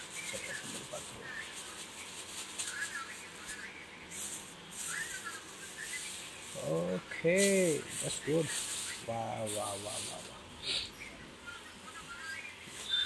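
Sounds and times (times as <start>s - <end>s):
plastic bag crinkling: 0.0s - 10.4s.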